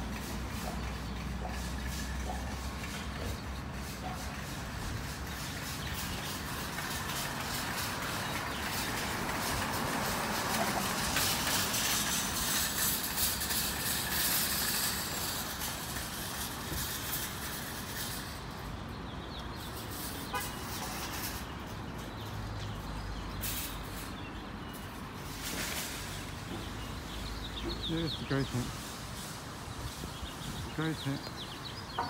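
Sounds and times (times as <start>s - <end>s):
traffic rumble: 0.0s - 32.0s.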